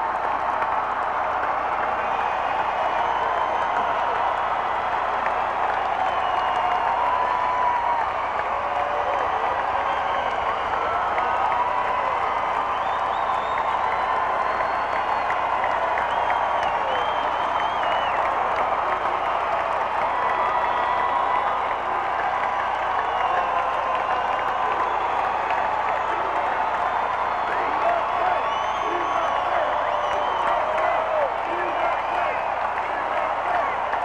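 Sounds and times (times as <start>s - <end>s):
crowd cheering and applauding: 0.0s - 34.0s
whoops and whistles: 2.0s - 4.2s, 5.9s - 8.3s, 9.1s - 19.6s, 22.6s - 32.5s.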